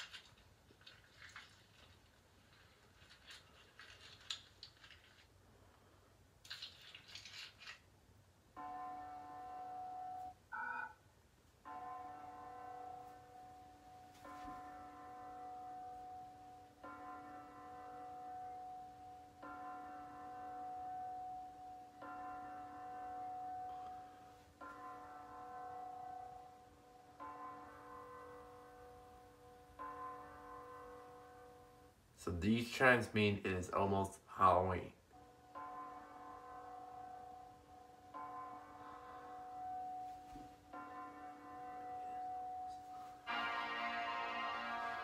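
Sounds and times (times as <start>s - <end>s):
recorded bell chimes: 8.5s - 45.0s.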